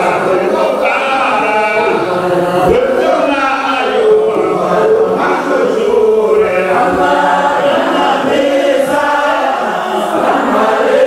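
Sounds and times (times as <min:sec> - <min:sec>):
group singing chant-like song: 0:00.0 - 0:11.0.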